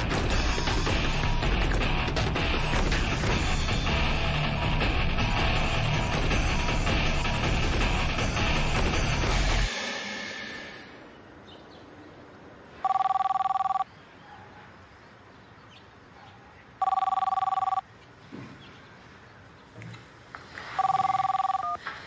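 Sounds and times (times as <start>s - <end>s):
cordless telephone ringing: 12.8s - 13.8s, 16.8s - 17.8s, 20.8s - 21.8s.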